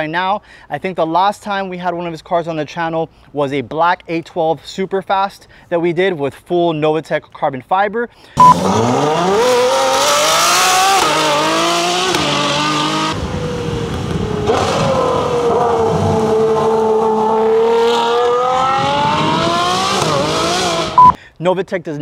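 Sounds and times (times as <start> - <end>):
car engine accelerating hard: 8.4 - 21.1.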